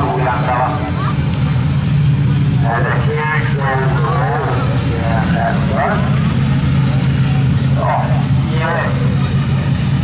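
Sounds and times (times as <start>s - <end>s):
announcer over loudspeaker: 0.0s - 1.2s, 2.6s - 6.4s, 7.4s - 9.5s
race car engine droning: 0.0s - 10.0s.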